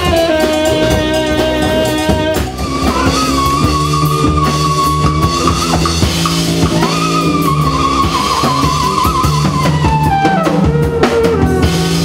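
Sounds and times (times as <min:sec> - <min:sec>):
jazz bass and drums: 0:00.0 - 0:12.0.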